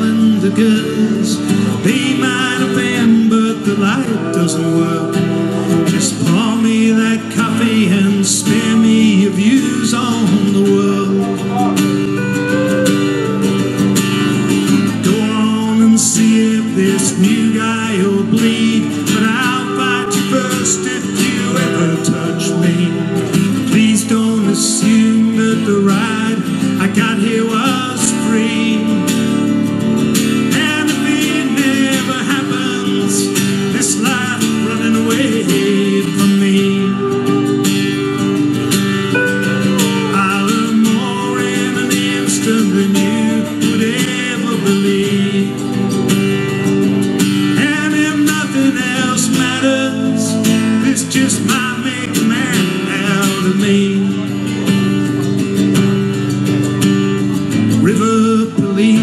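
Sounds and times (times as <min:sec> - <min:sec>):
steel guitar sliding notes: 0:00.0 - 0:57.8
strummed acoustic guitar: 0:00.0 - 0:59.0.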